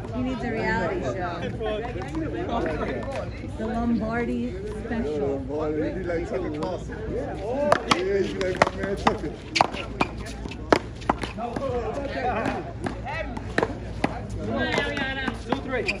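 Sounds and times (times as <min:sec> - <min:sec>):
ball smacking concrete wall: 0:07.7 - 0:09.8.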